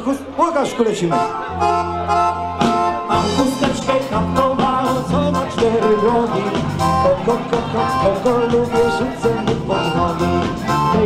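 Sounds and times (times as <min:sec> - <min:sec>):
accordion chords: 0:00.0 - 0:11.0.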